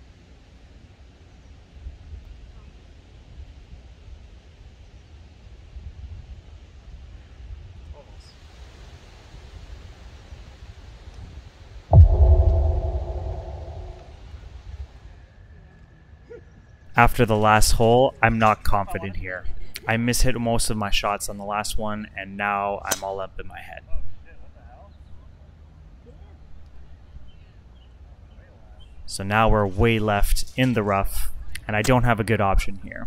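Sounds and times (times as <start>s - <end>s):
loud ringing knock: 11.9s - 14.0s
wind rumble on microphone: 11.9s - 14.1s.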